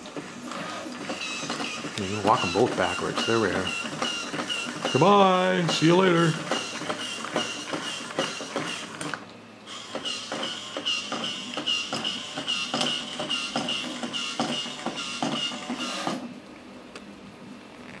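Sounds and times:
small geared motors whining: 0.0 - 16.3.

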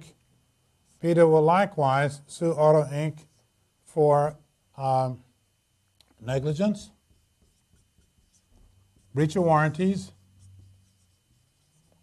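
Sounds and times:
marker scratching on whiteboard: 6.6 - 12.0.

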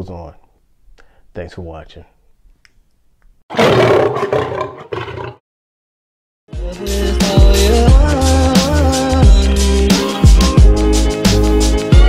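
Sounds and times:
loud animal-like roar: 3.5 - 5.4.

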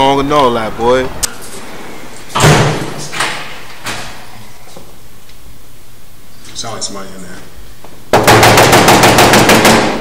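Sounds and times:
loud door bang: 2.3 - 4.1.

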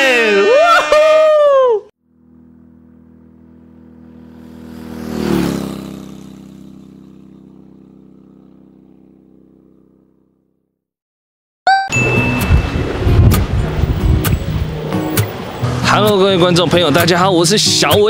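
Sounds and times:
person shouting: 0.0 - 1.9
vehicle engine passing by: 2.1 - 10.2, 12.6 - 17.5.

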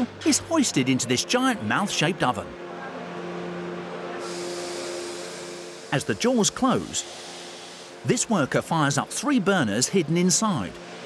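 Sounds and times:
machinery hum: 0.0 - 11.0
high hiss: 4.2 - 8.5.

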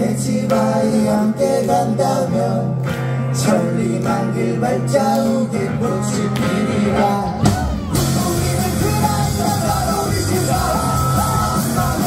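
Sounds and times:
lead vocal singing: 0.0 - 12.0
punk rock band playing live: 0.0 - 12.0.

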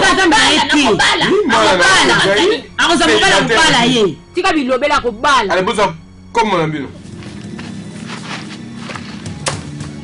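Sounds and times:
quick footsteps on dirt: 7.0 - 10.0.

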